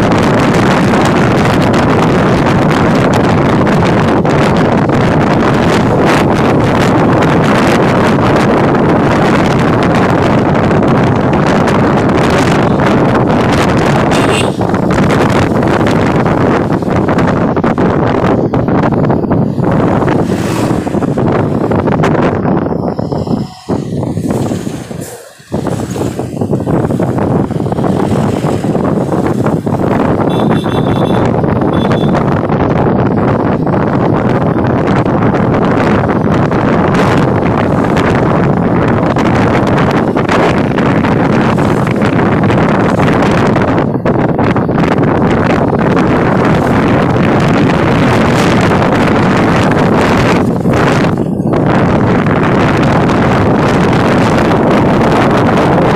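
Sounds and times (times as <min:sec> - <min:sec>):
road and engine noise: 0:00.0 - 0:55.9
wind rushing over microphone: 0:00.0 - 0:55.9
brief high tone: 0:22.4 - 0:26.4.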